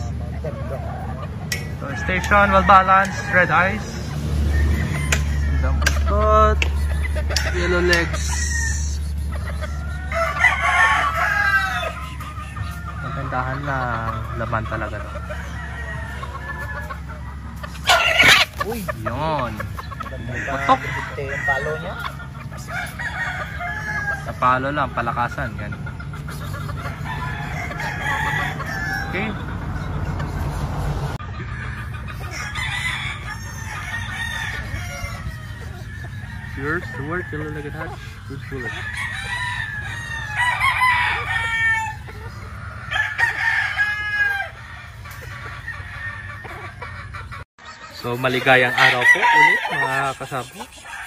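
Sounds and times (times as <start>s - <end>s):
chickens clucking: 0.0s - 51.0s
rooster crowing: 1.6s - 6.6s, 7.2s - 18.6s, 19.4s - 25.5s, 26.8s - 29.9s, 31.1s - 46.8s, 48.3s - 51.0s.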